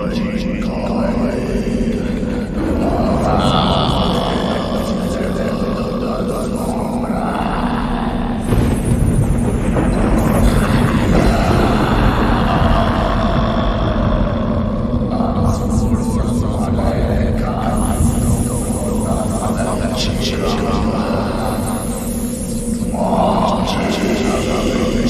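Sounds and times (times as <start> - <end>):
growling voice-like sounds: 0.0 - 25.0
loud noisy layer: 0.0 - 25.0
low drone: 0.0 - 25.0.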